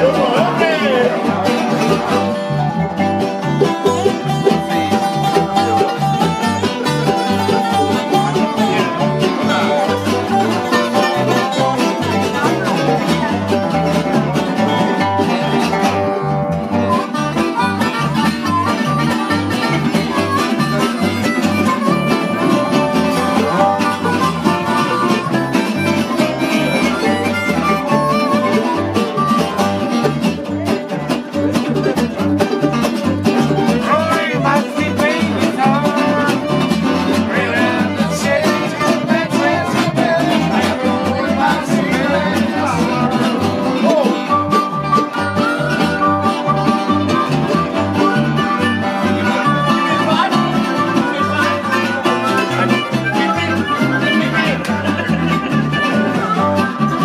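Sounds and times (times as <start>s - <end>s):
acoustic country band playing: 0.0s - 57.0s
fiddle: 0.0s - 57.0s.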